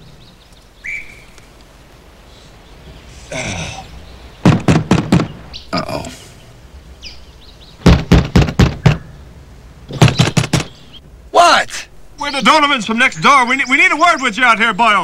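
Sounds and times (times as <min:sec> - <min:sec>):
knocking on a door: 0:04.4 - 0:05.3, 0:07.8 - 0:09.0, 0:09.9 - 0:10.7.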